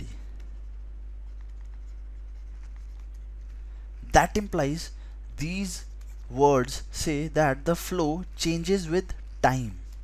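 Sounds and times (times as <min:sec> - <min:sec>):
low steady hum: 0:00.0 - 0:10.0
stylus scratching on pen tablet: 0:00.7 - 0:03.5.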